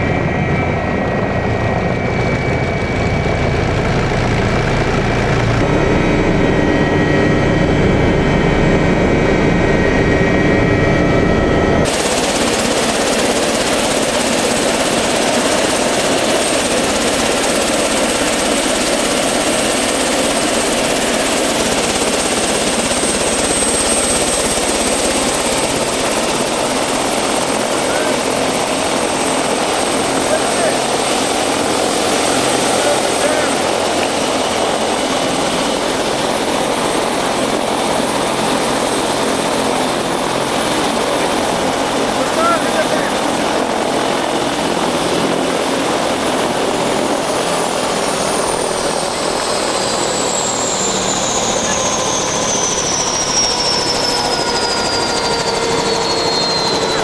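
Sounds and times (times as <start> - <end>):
helicopter rotor and engine: 0.0 - 57.0
high turbine whine: 0.0 - 57.0.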